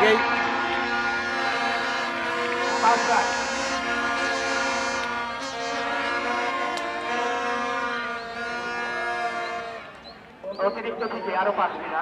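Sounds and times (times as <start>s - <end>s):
plastic toy horns blaring: 0.4s - 10.0s.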